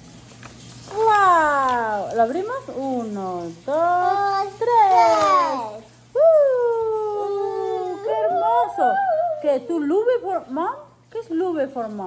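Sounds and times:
woman saying awww: 0:06.2 - 0:09.8.

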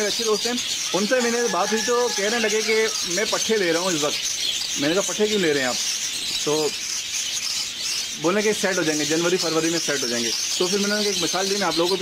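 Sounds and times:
small birds chirping and twittering: 0:00.0 - 0:12.0.

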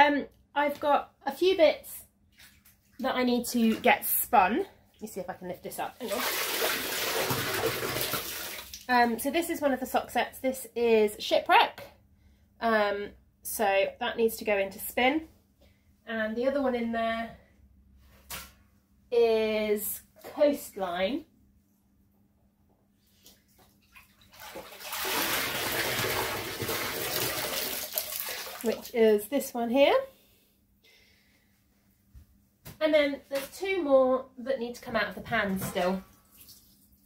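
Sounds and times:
water pouring into a pan: 0:06.0 - 0:08.7, 0:23.9 - 0:28.9.

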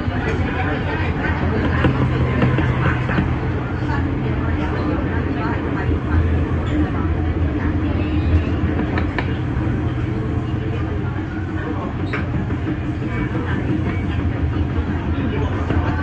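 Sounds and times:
electric train rumbling on track: 0:00.0 - 0:16.0.

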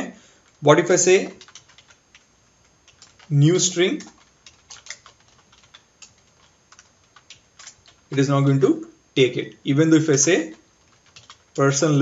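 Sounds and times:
keyboard typing clicks: 0:01.2 - 0:08.3, 0:10.5 - 0:11.6.

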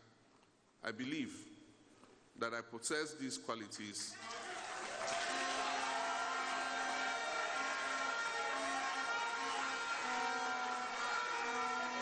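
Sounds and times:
crowd cheering in a hall: 0:04.1 - 0:12.0
long steady horn notes: 0:05.1 - 0:12.0.

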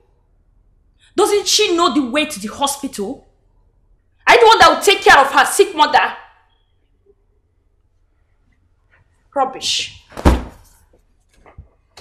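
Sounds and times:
woman speaking: 0:01.2 - 0:03.3, 0:04.3 - 0:06.3, 0:09.3 - 0:10.1.

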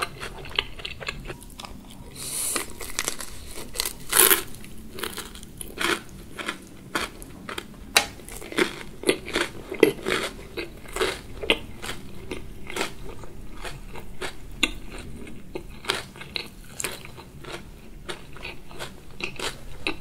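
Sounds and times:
crunchy chewing: 0:00.0 - 0:20.0.

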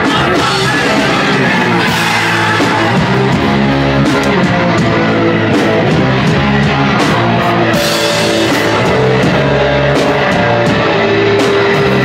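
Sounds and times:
electric guitar long notes: 0:00.0 - 0:12.0
punk band playing live: 0:00.0 - 0:12.0.

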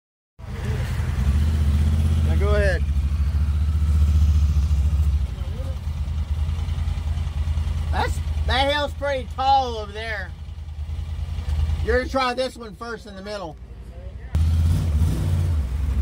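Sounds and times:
utility vehicle engine under throttle: 0:00.4 - 0:12.2, 0:14.4 - 0:16.0.

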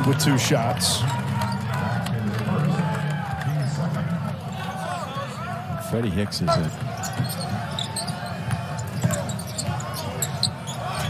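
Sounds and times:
sneaker squeaks: 0:06.5 - 0:11.0.

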